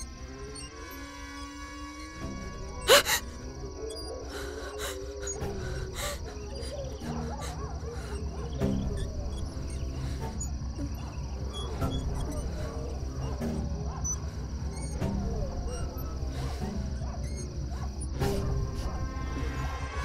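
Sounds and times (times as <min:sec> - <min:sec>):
low steady drone: 0:00.0 - 0:20.0.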